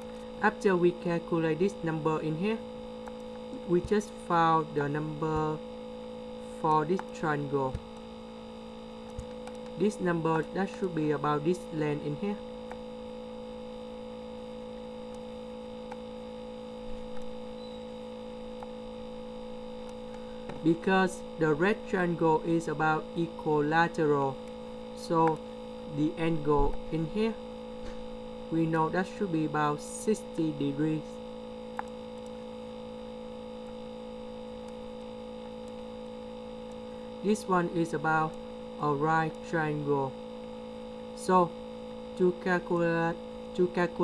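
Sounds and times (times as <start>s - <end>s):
electrical hum: 0.0s - 44.0s.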